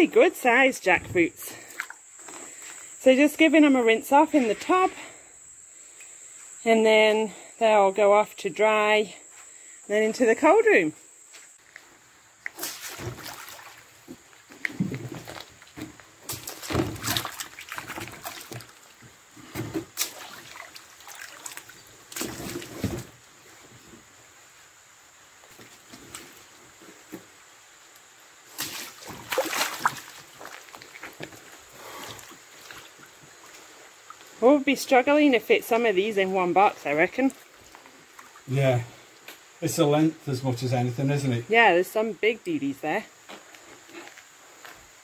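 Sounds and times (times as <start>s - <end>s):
water sloshing in a tub: 12.5s - 23.1s, 28.5s - 34.3s, 36.6s - 38.6s.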